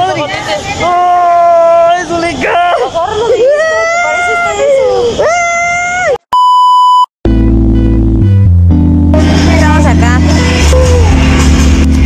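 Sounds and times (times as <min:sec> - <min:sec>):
person wailing: 0:02.4 - 0:06.2, 0:10.6 - 0:11.2
steady beep: 0:06.3 - 0:10.7
music with heavy bass: 0:07.2 - 0:12.0.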